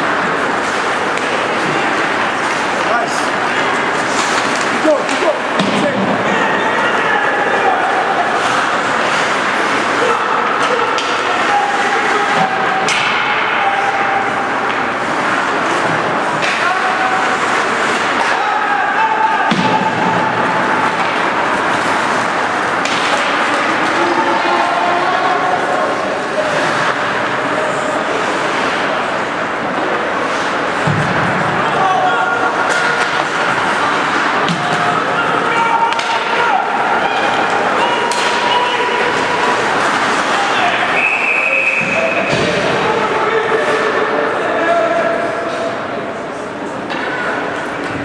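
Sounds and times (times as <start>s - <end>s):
skates on ice: 0.0s - 6.3s
crowd noise: 0.0s - 48.0s
hockey sticks and puck knocking: 0.3s - 6.2s, 10.4s - 11.5s, 14.6s - 18.5s, 19.4s - 24.2s, 32.6s - 35.0s, 35.8s - 36.4s, 37.3s - 40.5s
voices shouting: 1.5s - 15.8s, 16.4s - 28.7s, 31.4s - 45.8s.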